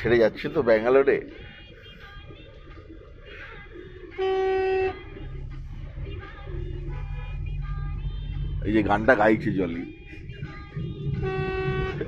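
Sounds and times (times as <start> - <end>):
car driving rumble: 1.1 - 12.0.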